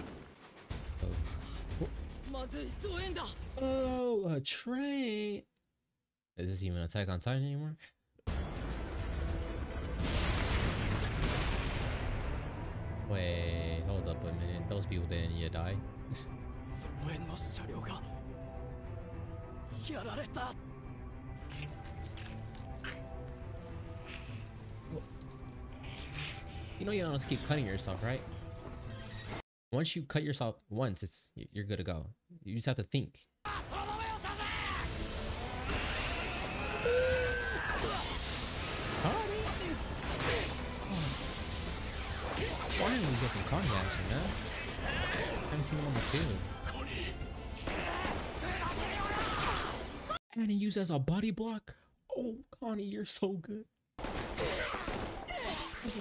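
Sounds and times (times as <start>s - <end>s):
explosions and gunfire: 0.0s - 3.6s, 8.3s - 12.9s, 37.7s - 46.5s, 47.5s - 50.1s, 54.0s - 56.0s
long yell: 33.5s - 38.0s
voices shouting: 33.5s - 38.0s.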